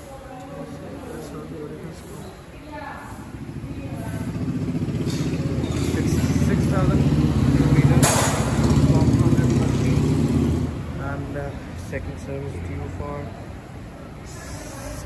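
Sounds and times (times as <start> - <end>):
motorcycle engine running: 3.3 - 11.3.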